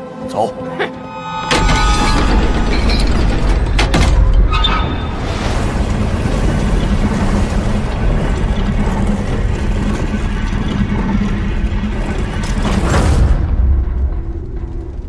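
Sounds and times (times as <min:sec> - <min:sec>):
low hum: 0:00.9 - 0:15.0
heavy door sliding open: 0:01.3 - 0:13.7.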